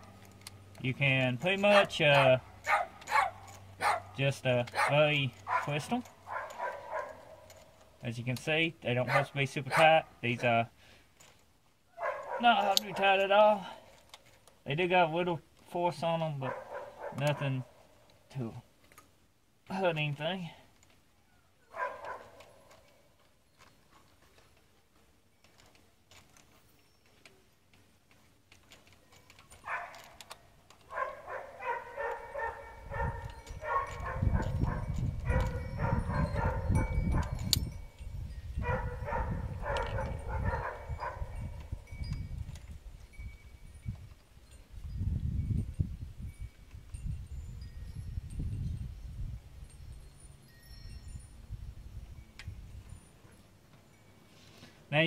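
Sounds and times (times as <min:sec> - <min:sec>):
ratchet clicking with metallic ring: 0:32.1 - 0:38.5.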